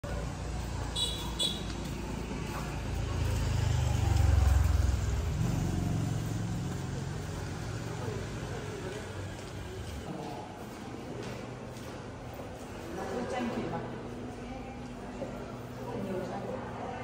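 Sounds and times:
vehicle engine passing: 0.0 - 10.0
street traffic: 0.0 - 17.0.

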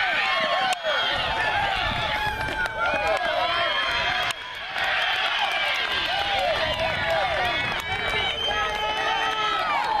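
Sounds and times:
high voices chanting and cheering: 0.0 - 10.0.

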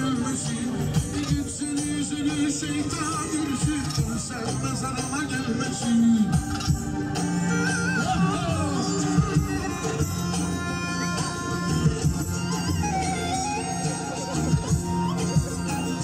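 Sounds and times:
drum beats: 0.0 - 16.0
wind instrument ornamented melody: 4.3 - 16.0.

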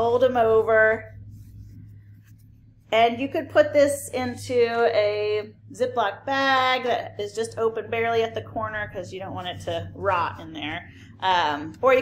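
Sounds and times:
paper towel rustling: 0.0 - 3.5.

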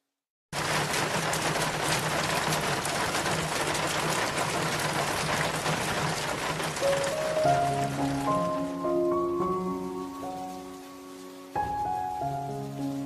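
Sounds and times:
steady rain pattering: 0.6 - 13.0.

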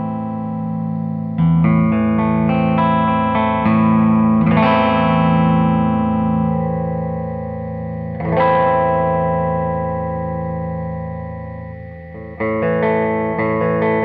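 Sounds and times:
electric guitar chords with phaser: 0.0 - 14.0.

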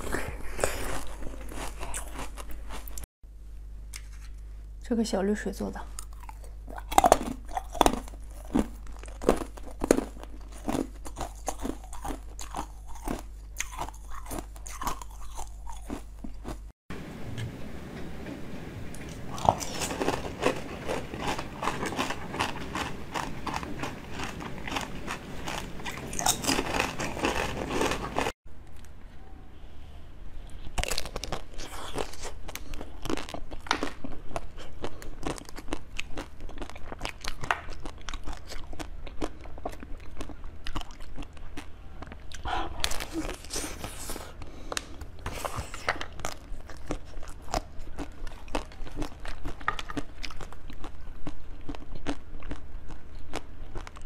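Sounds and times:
ice being crunched and chewed: 0.0 - 3.1, 6.0 - 16.7, 19.3 - 28.4, 30.5 - 54.0.

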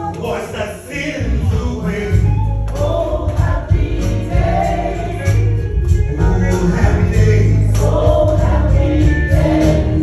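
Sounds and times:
gospel singing: 0.0 - 10.0
strong bass line: 1.2 - 10.0
electronic keyboard: 1.4 - 10.0.

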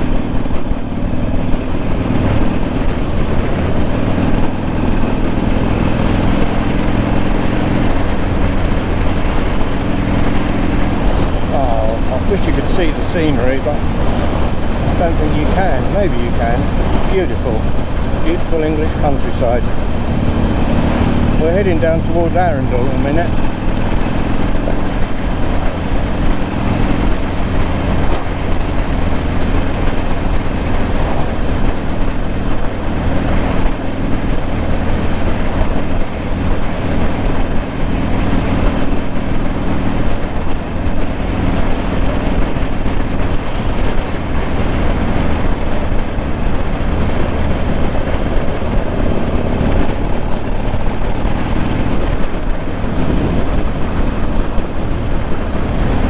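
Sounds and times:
motorcycle engine running: 0.0 - 56.0
wind noise on microphone: 0.0 - 56.0.

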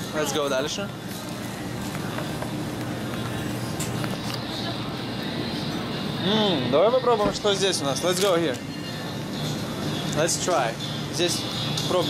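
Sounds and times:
grocery store hum: 0.0 - 12.0.

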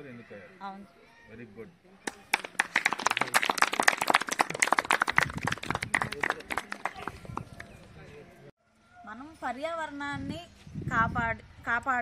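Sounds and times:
small group applauding: 2.1 - 7.8.

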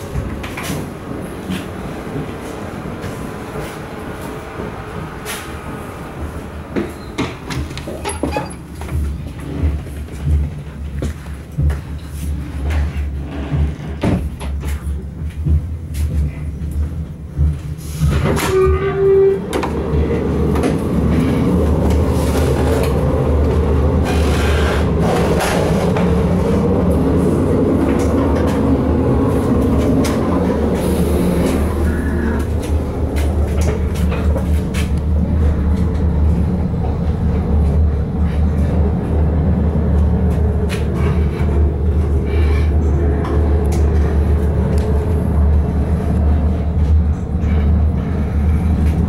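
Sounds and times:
railcar engine drone: 0.0 - 49.0
wheel-on-rail noise: 0.0 - 49.0.

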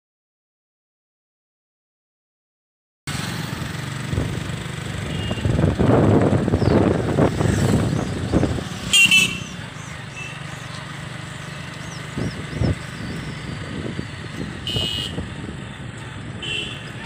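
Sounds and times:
motorcycle engine hum: 3.1 - 17.0
wind rushing on microphone: 4.0 - 8.9, 11.8 - 16.4
vehicle horn beep: 5.0 - 5.6, 8.9 - 9.6, 14.6 - 15.3, 16.4 - 17.0.

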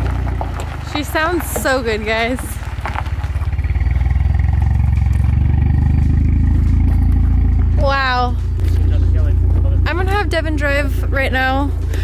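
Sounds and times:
car engine idling at exhaust: 0.0 - 12.0.

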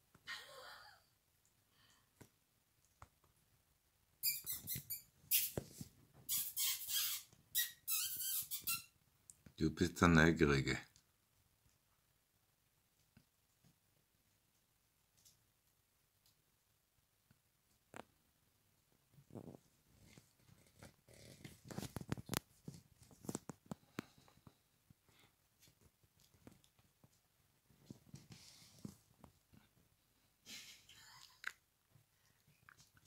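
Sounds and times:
puppies squeaking and yelping: 4.2 - 5.6, 6.3 - 8.9.

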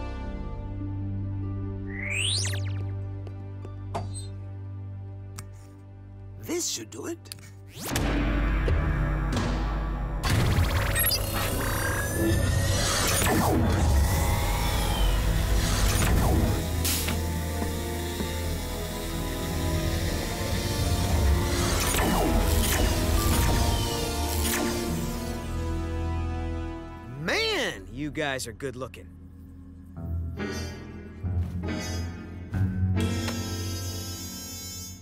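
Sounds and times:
music: 0.0 - 35.0
electric zaps and crackles: 10.2 - 25.7.

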